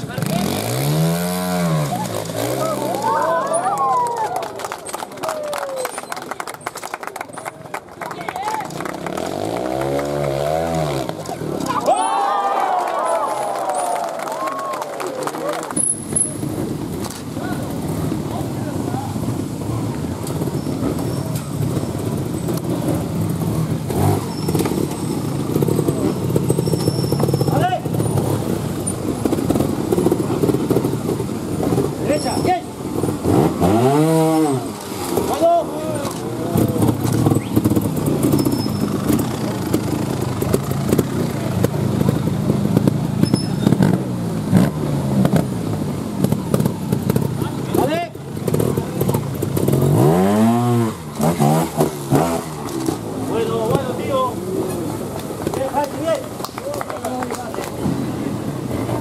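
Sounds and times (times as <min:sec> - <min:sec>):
motorcycle engine revving: 0:00.0 - 0:03.7, 0:08.8 - 0:11.8, 0:15.8 - 0:56.4
murmur of spectator voices: 0:01.6 - 0:10.1, 0:11.0 - 0:23.9.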